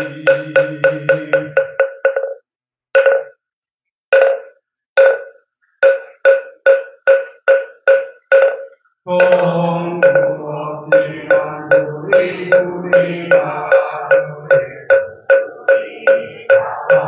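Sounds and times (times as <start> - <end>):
group chanting in unison: 9.1 - 17.0.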